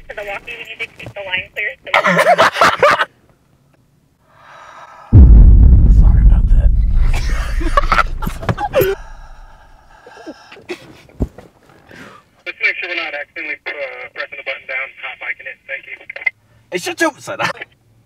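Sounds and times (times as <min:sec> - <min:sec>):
man breathing heavily: 0:04.3 - 0:05.2, 0:08.6 - 0:10.8
breathy rush with deep rumble: 0:04.4 - 0:10.2.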